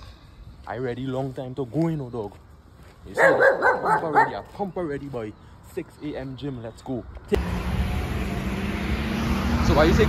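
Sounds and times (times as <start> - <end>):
car driving past: 7.4 - 10.0.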